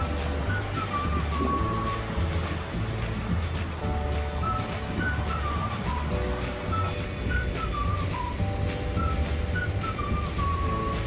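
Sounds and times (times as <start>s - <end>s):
light tune with whistle-like lead: 0.0s - 11.0s.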